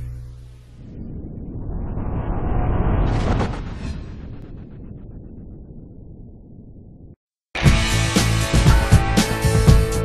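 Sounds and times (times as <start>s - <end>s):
rumbling logo intro effect: 0.2s - 7.2s.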